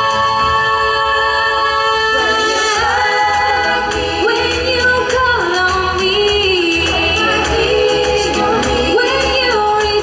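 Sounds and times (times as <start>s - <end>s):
girls singing in harmony: 0.0s - 10.0s.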